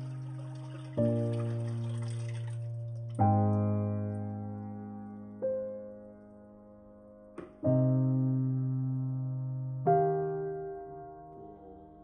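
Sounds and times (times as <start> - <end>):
water pouring into toilet bowl: 0.0 - 3.4
slow piano chords: 0.0 - 12.0.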